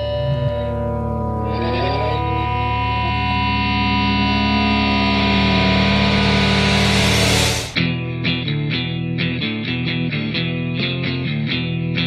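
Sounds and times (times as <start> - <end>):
noise and hum: 0.0 - 7.9
grunge rock electric guitar: 0.0 - 12.0.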